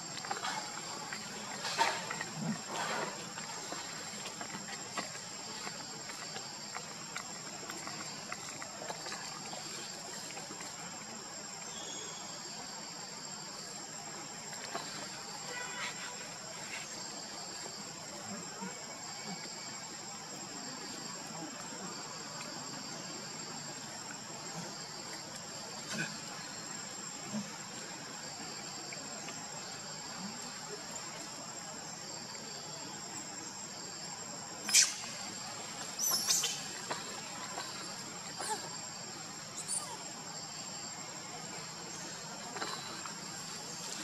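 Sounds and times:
high-pitched insect chorus: 0.0 - 44.0.

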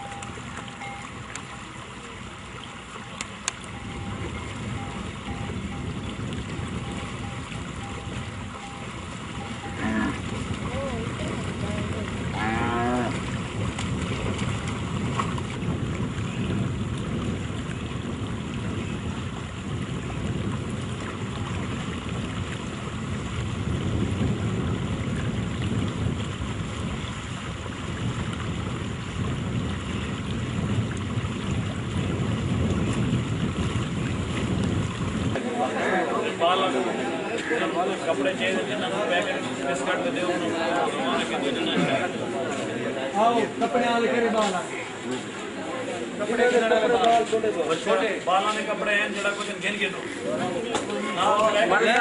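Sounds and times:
wind buffeting microphone: 0.0 - 44.5.

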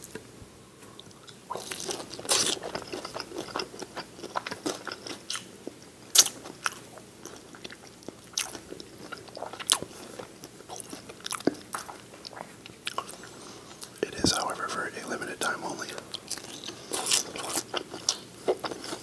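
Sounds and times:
wet chewing: 1.0 - 14.5, 16.0 - 19.0
crunchy bites of fried chicken: 1.4 - 14.3, 16.2 - 19.0.

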